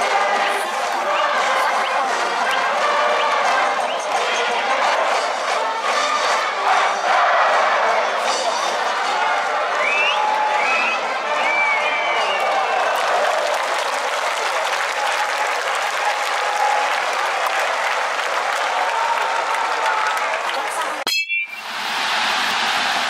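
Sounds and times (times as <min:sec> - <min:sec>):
stadium crowd cheering: 0:00.0 - 0:23.0.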